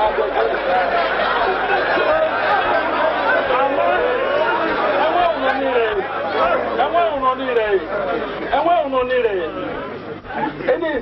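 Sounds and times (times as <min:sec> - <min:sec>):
voices chattering: 0:00.0 - 0:11.0
man talking into a microphone: 0:10.5 - 0:11.0.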